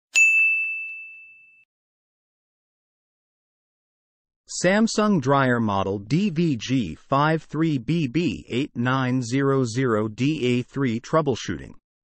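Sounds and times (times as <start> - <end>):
bright bell ding: 0.1 - 1.7.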